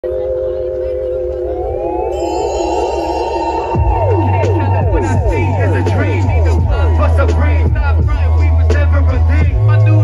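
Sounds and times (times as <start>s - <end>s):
warbling siren-like electronic tone: 0.0s - 7.8s
low bass rumble: 0.0s - 10.0s.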